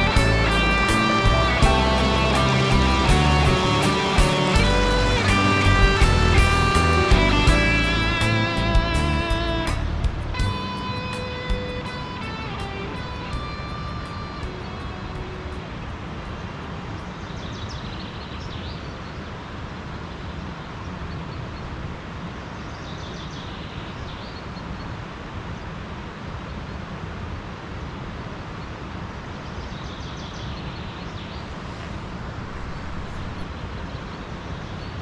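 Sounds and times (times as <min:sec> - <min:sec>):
music: 0:00.0 - 0:16.1
steady outdoor rushing noise: 0:00.0 - 0:29.6, 0:30.2 - 0:35.0.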